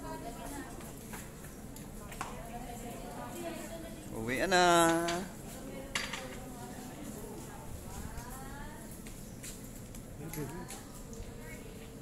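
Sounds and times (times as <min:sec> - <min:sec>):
hum of a gathering: 0:00.0 - 0:12.0.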